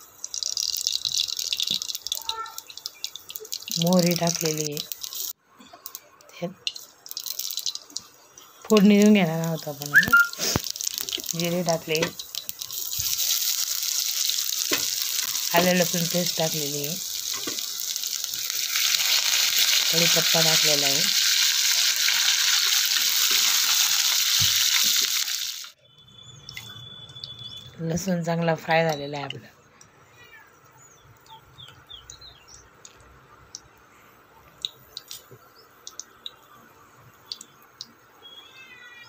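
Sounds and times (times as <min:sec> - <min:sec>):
hot oil sizzling: 0:00.0 - 0:25.8
high-pitched wavering call: 0:09.9 - 0:10.4.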